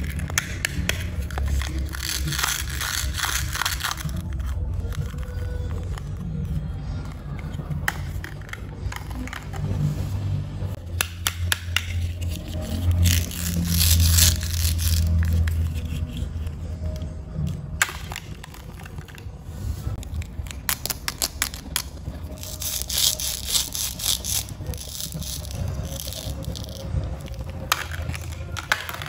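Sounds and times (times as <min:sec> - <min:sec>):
plastic toy pieces clicking: 0:00.0 - 0:04.3
plastic rubbing crackles: 0:00.0 - 0:09.8, 0:12.0 - 0:29.0.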